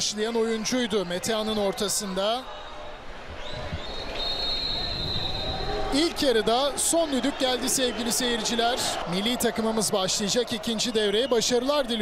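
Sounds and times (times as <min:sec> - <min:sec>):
stadium crowd noise: 0:00.0 - 0:12.0
referee's whistle blast: 0:03.5 - 0:05.7.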